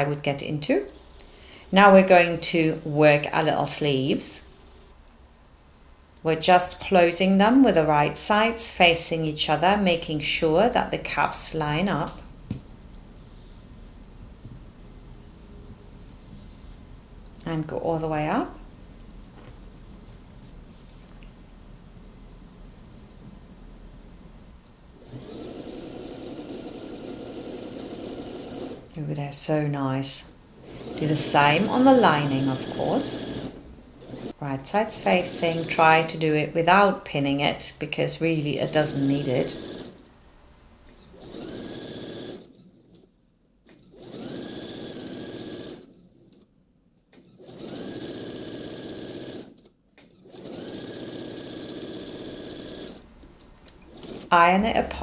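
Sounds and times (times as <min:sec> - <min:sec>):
electric sewing machine stitching: 0:02.2 - 0:05.0, 0:25.0 - 0:28.9, 0:30.6 - 0:36.2, 0:38.4 - 0:40.1, 0:41.0 - 0:43.1, 0:43.7 - 0:46.5, 0:47.2 - 0:53.1, 0:53.7 - 0:54.7.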